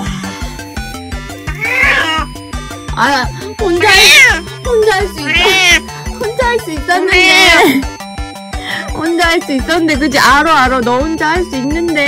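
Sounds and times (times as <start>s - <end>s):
background music with steady beat: 0.0s - 12.0s
cat meowing: 1.5s - 2.4s, 3.7s - 4.5s, 5.1s - 5.9s.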